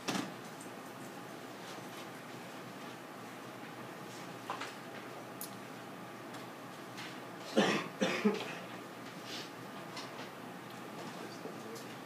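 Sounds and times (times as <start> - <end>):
room hum: 0.0 - 12.0
person coughing: 7.5 - 8.7.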